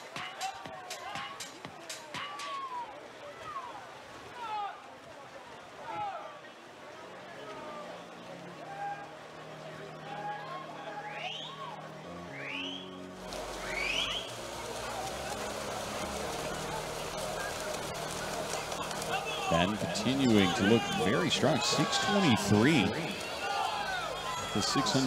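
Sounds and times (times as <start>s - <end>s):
pool and crowd noise: 0.0s - 25.0s
low background music: 7.2s - 25.0s.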